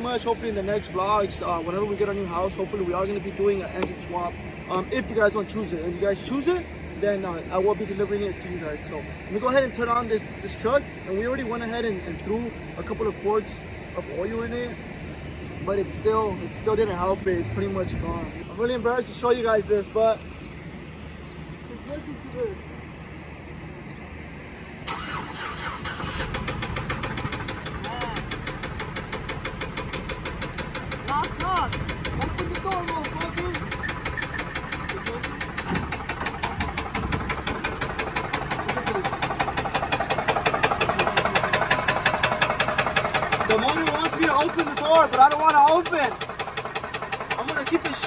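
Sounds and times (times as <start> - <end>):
engine starting: 24.8 - 31.0, 33.4 - 48.0
engine knocking loudly: 26.3 - 48.0.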